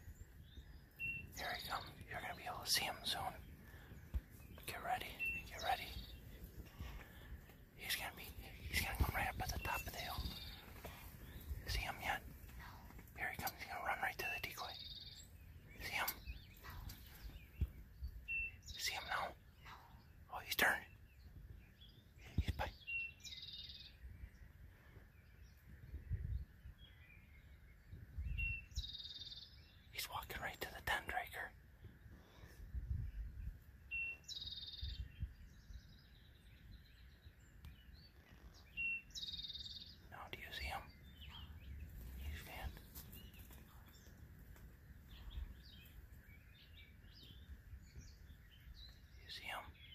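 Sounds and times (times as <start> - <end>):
songbirds singing: 0.0 - 49.9
faint clicks and rustles: 41.1 - 46.3.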